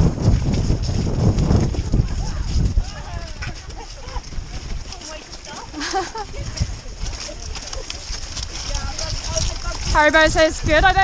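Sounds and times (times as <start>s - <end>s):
hooves thudding on mud: 0.0s - 11.0s
faint voices: 1.8s - 11.0s.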